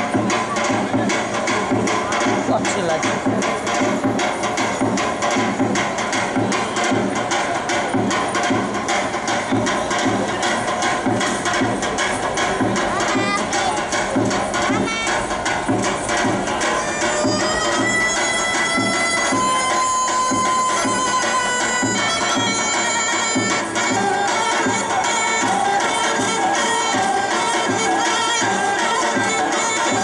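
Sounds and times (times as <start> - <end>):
fast percussion beat: 0.0 - 30.0
folk dance music: 0.0 - 30.0.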